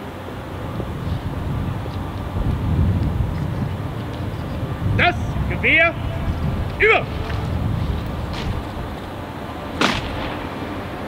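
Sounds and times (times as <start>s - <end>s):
outdoor rumble: 0.1s - 11.0s.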